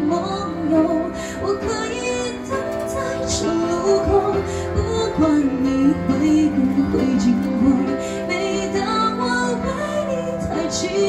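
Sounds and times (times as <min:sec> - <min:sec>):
instrumental accompaniment: 0:00.0 - 0:11.0
woman singing a ballad: 0:00.0 - 0:11.0.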